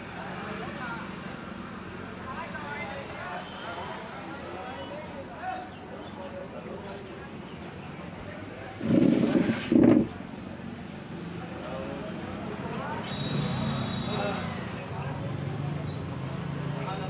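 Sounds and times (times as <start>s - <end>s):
people talking in background: 0.0s - 17.0s.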